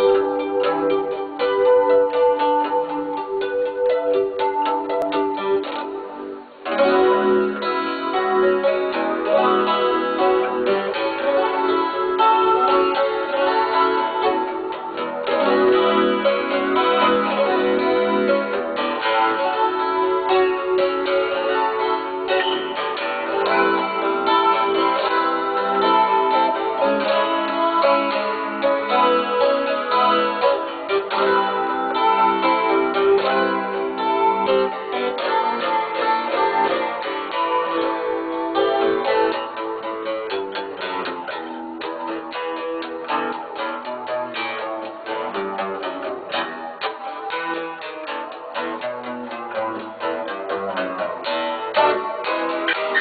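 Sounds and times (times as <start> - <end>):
jazz on acoustic guitar: 0.0 - 53.0.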